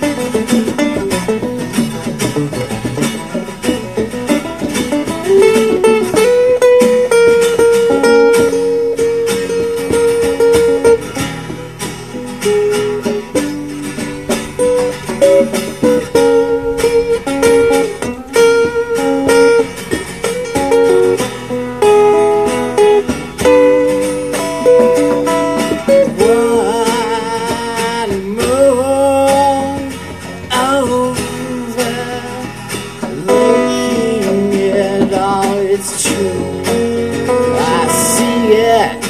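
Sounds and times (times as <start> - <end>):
lead acoustic guitar melody: 0.0 - 39.0
rhythm acoustic guitar: 0.0 - 39.0.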